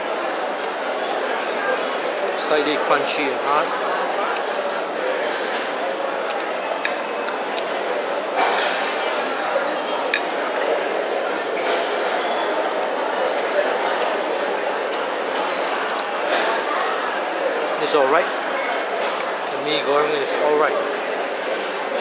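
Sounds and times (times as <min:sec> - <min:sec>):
chatter of many voices: 0:00.0 - 0:22.0.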